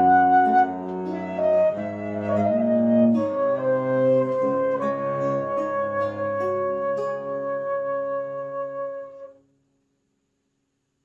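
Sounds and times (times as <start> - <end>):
plucked lute: 0.0 - 8.9
bowed viol: 0.0 - 9.3
flute holding long note: 0.0 - 9.4.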